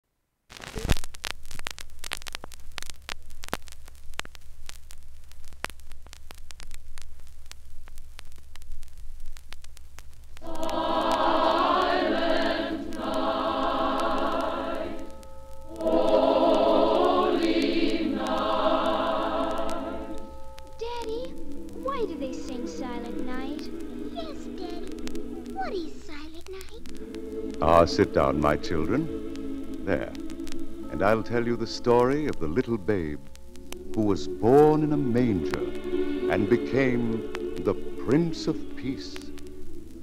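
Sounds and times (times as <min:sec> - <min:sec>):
vinyl crackle and surface clicks: 0:00.4 - 0:40.0
women's choir singing: 0:10.4 - 0:20.4, 0:21.4 - 0:25.6, 0:26.9 - 0:31.6, 0:33.8 - 0:40.0.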